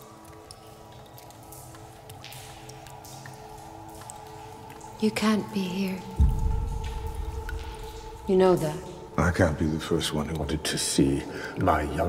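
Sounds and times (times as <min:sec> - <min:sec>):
dark ambient drone: 0:00.0 - 0:12.0.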